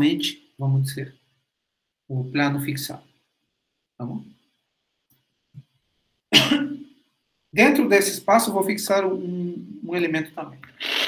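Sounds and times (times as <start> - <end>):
man coughing: 6.3 - 6.8.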